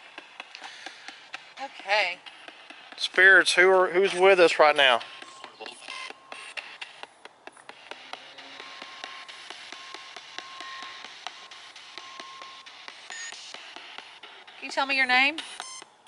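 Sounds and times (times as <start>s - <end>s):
rapid irregular clicks: 0.0s - 16.0s.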